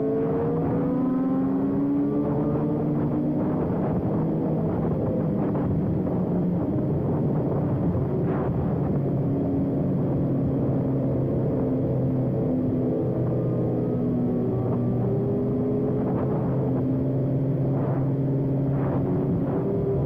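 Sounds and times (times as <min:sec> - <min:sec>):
motorcycle engine at speed: 0:00.0 - 0:20.0
other motorcycle engines: 0:00.0 - 0:20.0.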